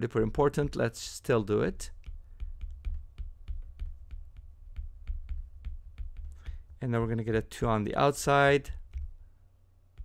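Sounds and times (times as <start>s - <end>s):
low steady rumble: 0.0s - 10.0s
stylus tapping on glass screen: 1.9s - 6.8s.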